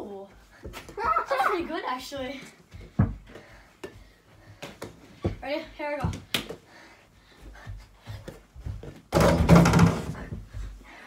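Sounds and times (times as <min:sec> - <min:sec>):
ball thumping wooden door: 0:09.1 - 0:10.3.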